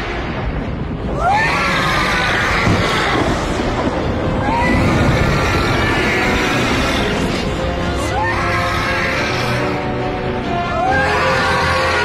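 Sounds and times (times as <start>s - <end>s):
low rumble: 0.0s - 10.7s
film music: 0.0s - 12.0s
people screaming: 1.0s - 12.0s.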